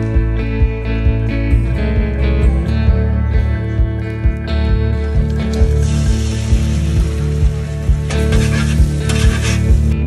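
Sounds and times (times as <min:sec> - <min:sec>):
background music with steady beat: 0:00.0 - 0:10.0
eggs sizzling on griddle: 0:05.9 - 0:09.8
metal spatula scraping griddle: 0:08.1 - 0:09.9.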